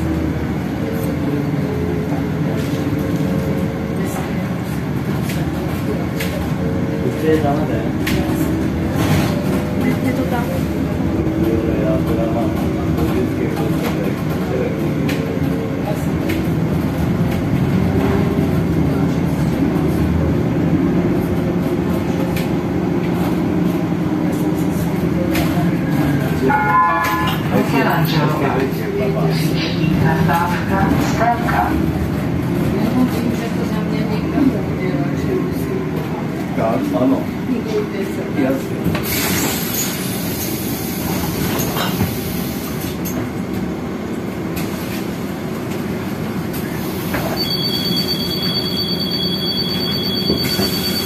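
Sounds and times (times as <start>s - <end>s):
bus engine and road rumble: 0.0s - 51.0s
electronic chime: 47.4s - 51.0s.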